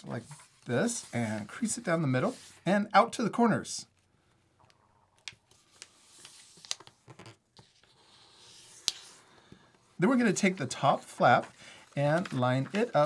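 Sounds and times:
paper rustling and sliding: 0.0 - 2.7, 5.5 - 13.0.

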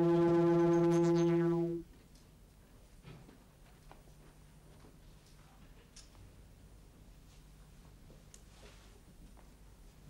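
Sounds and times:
low buzzy synthesized tone: 0.0 - 1.9.

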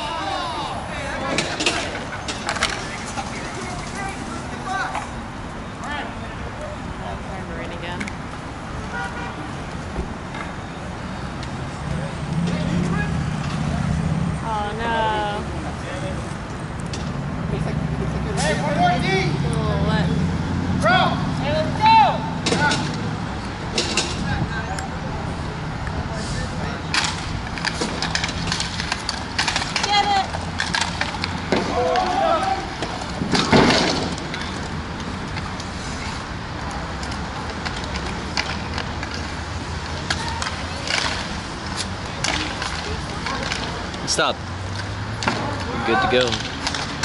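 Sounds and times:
players shouting: 0.0 - 5.2, 20.7 - 23.0, 29.4 - 34.7
clacks of sticks and puck: 1.2 - 5.2, 26.9 - 35.8, 36.6 - 47.0.

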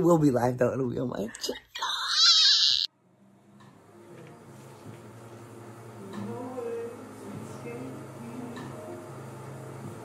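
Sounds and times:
woman squealing: 1.6 - 2.9
faint background music: 2.9 - 10.0.

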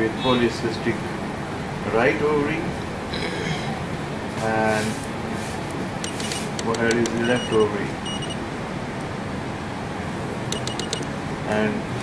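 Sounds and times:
steady background hum: 0.0 - 12.0
high-pitched electronic beep: 6.0 - 8.4, 10.5 - 11.1.

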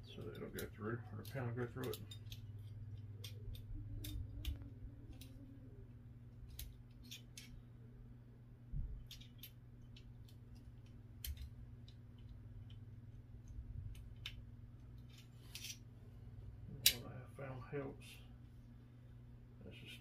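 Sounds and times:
low hum: 0.0 - 20.0
small metal clicks and taps: 0.2 - 5.4, 9.0 - 15.8.

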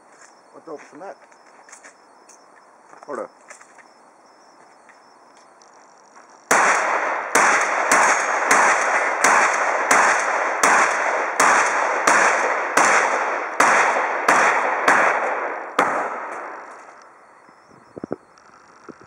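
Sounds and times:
shotgun shots with echo: 6.5 - 16.6.

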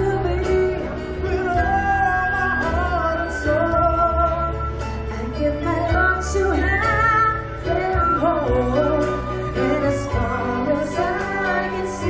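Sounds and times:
person singing: 0.0 - 12.0
steady bass: 0.0 - 12.0
violins: 0.0 - 12.0.

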